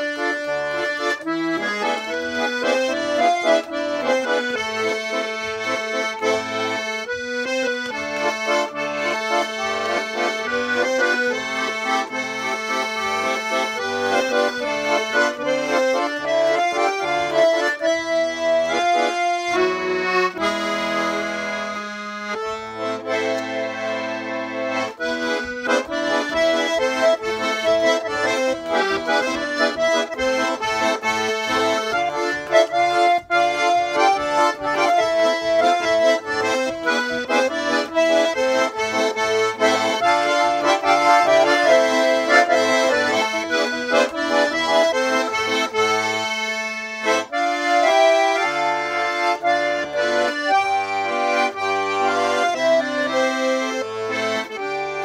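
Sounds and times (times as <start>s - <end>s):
button accordion melody with bass: 0.0s - 55.0s.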